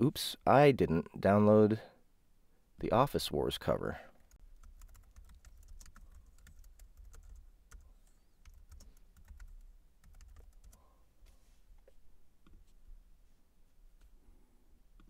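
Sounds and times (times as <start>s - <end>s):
typing on computer keyboard: 4.3s - 10.8s.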